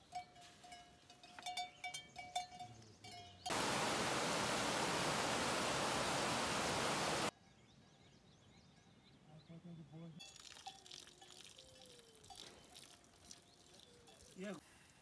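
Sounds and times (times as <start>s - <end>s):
rushing mountain stream: 3.5s - 7.3s.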